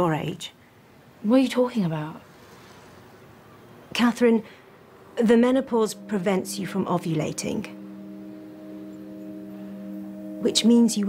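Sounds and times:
soft held chord: 4.8s - 11.0s.

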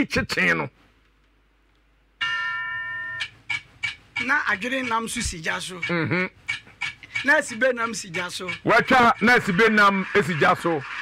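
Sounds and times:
bell chime ringing: 2.2s - 3.3s.

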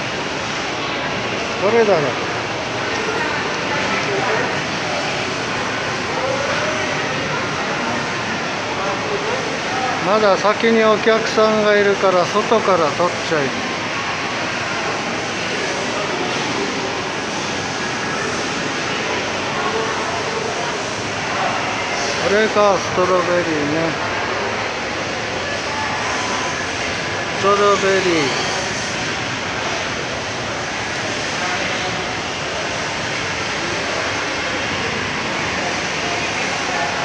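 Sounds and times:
faint voices: 0.0s - 37.0s
shopping mall hubbub: 0.0s - 37.0s
ventilation hum: 0.0s - 37.0s.

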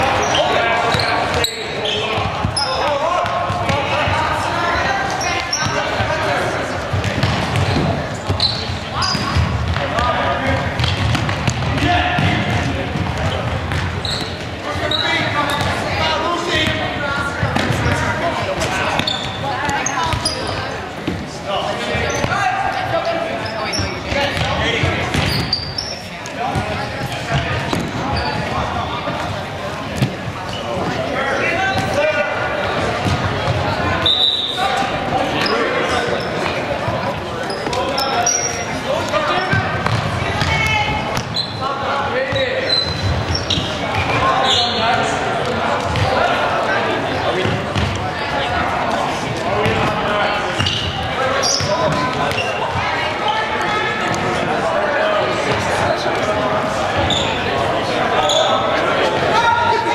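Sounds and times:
shoes squeaking: 0.0s - 4.2s, 5.0s - 6.0s, 7.0s - 9.6s, 12.2s - 20.8s, 21.8s - 32.1s, 32.7s - 45.2s, 49.7s - 53.9s, 57.0s - 57.6s, 58.2s - 58.8s
players calling out: 0.0s - 59.9s
ball bouncing on gym floor: 6.9s - 8.5s, 9.1s - 14.5s, 33.0s - 33.6s, 39.5s - 41.4s, 47.4s - 48.0s.

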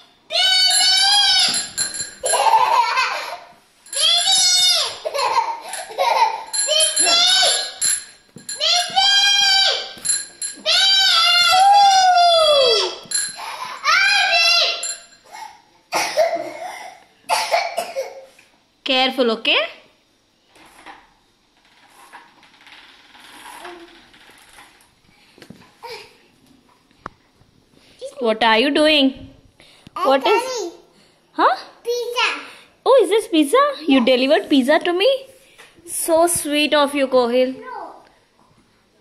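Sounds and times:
child squealing: 0.3s - 2.4s, 4.0s - 7.8s, 8.6s - 10.0s, 10.7s - 15.6s
child laughing: 2.2s - 3.6s, 4.8s - 7.6s
person coughing: 15.4s - 18.3s.

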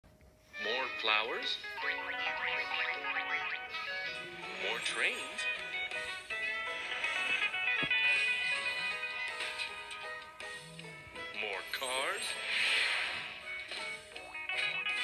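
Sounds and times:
cartoon music through tablet speaker: 0.4s - 15.0s.

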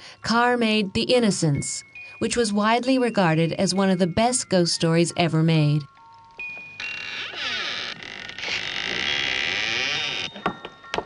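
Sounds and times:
tinkling chime-like notes: 0.0s - 8.0s, 9.0s - 11.0s.

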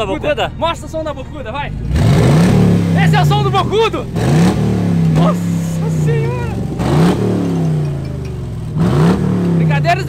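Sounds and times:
car engine revving: 1.7s - 10.0s.

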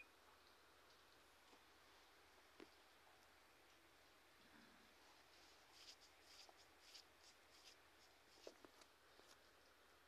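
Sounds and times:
soft scratchy rustles: 5.0s - 9.8s.

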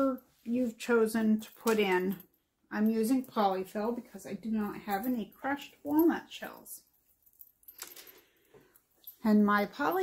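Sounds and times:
light clicks and clinks: 7.0s - 10.0s.

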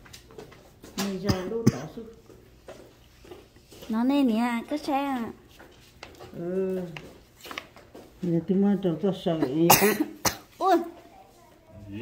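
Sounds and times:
short cough: 9.4s - 10.5s.

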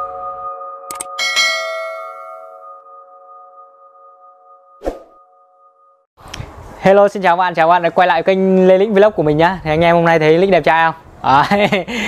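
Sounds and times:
bell-like chime: 0.0s - 6.1s.

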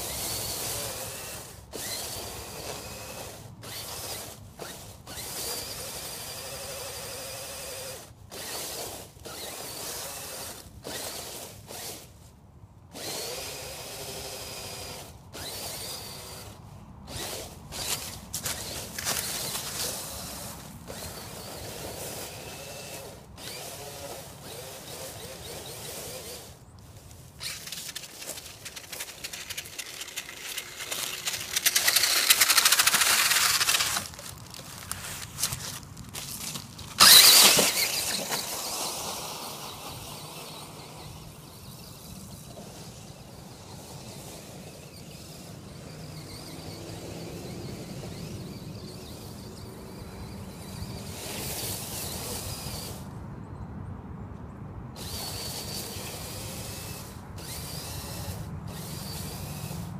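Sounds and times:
toy truck electric motor whining: 0.0s - 53.1s, 55.0s - 59.9s
driving through dry leaves: 0.0s - 53.3s, 55.0s - 59.9s
footsteps crunching dry leaves: 17.2s - 21.5s, 26.9s - 38.8s.

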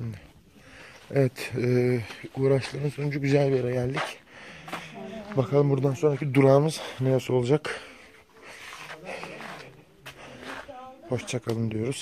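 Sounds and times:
faint voices: 1.1s - 12.0s
surrounding talk: 1.1s - 12.0s.

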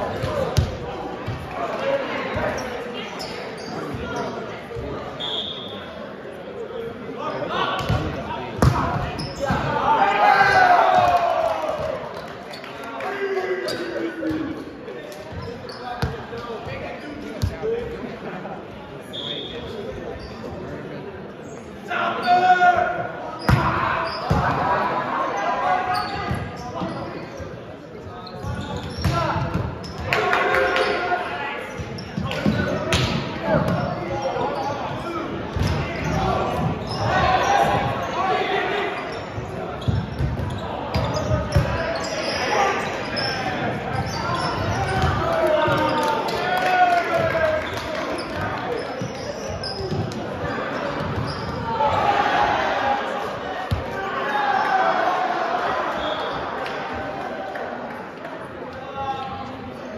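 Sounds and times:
players shouting calls: 7.2s - 12.1s, 21.8s - 27.2s, 28.5s - 39.8s, 40.5s - 57.7s.

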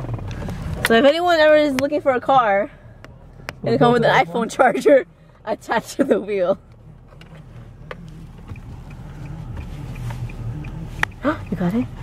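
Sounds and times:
car cabin hum: 0.0s - 12.0s
faint rapid ticking: 8.4s - 12.0s.

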